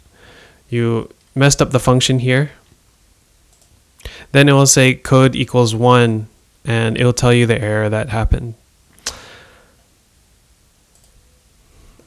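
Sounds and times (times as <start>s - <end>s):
sharp click: 9.0s - 9.2s.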